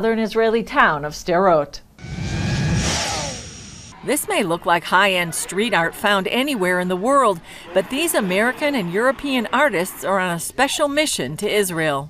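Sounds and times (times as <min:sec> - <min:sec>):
whooshing transition effect: 0:02.0 - 0:04.0.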